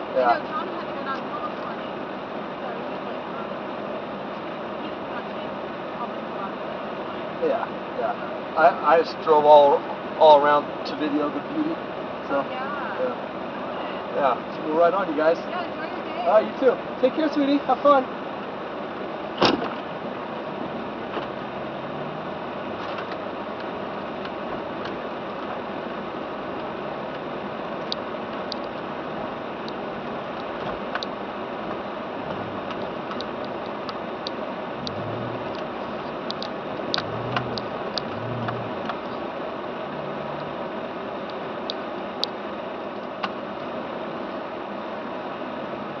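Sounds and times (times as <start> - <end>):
car cabin noise hiss: 16.6 - 46.0
faint low hums: 20.4 - 42.3.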